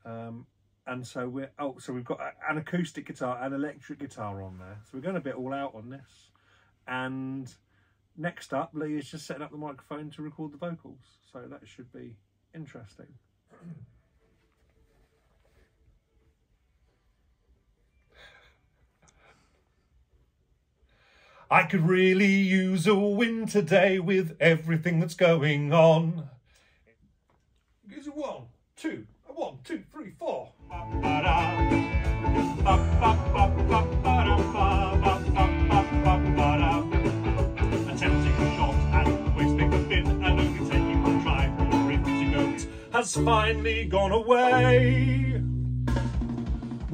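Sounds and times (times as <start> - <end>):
man singing: 21.5 - 26.3, 30.6 - 45.5
band backing track: 30.6 - 46.9.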